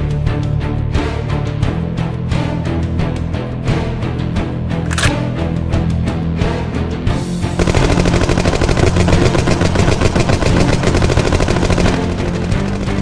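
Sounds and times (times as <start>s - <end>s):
soundtrack music with low notes: 0.0s - 13.0s
automatic rifle gunfire: 4.9s - 5.3s, 7.6s - 13.0s.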